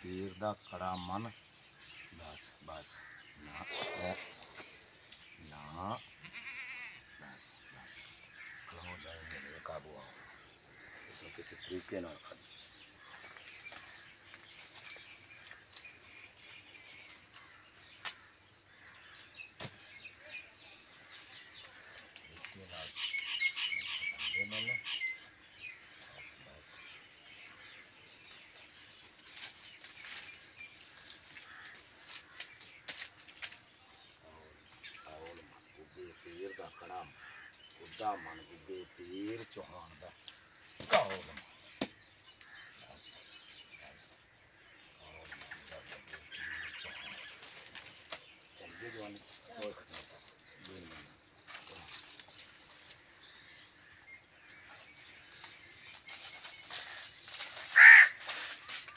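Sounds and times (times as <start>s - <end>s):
small birds chirping: 0.0s - 58.9s.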